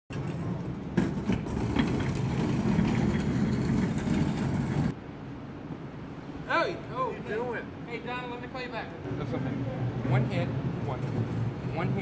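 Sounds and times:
wheels rumbling over concrete: 0:00.1 - 0:05.0.

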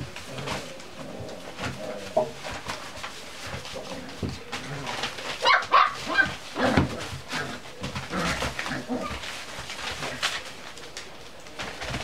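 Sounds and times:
puppies yipping and barking: 0:05.3 - 0:09.4.

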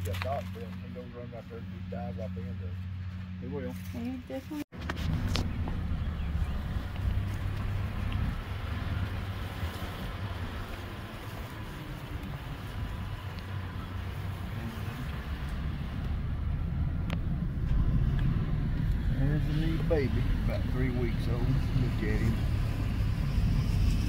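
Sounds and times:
wind buffeting microphone: 0:04.7 - 0:24.0.

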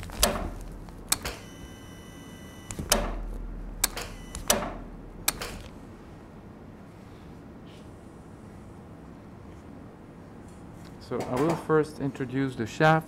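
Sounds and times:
steady multi-pitch tone: 0:01.4 - 0:02.8.

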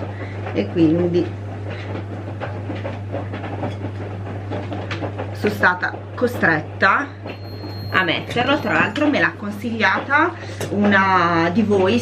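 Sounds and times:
washing machine humming: 0:00.0 - 0:12.0.

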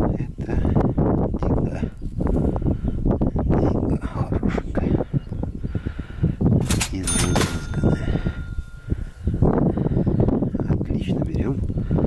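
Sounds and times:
wind buffeting microphone: 0:00.0 - 0:12.0
bright metallic ding: 0:07.0 - 0:09.2.

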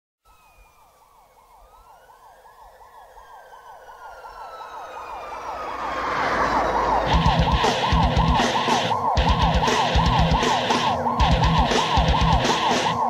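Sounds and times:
siren-like wail: 0:00.3 - 0:13.0
metal music: 0:05.0 - 0:13.0.

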